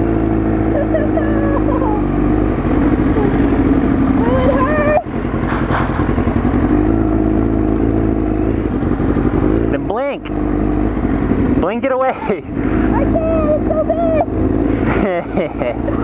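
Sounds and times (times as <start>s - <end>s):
motorcycle engine running: 0.0s - 16.0s.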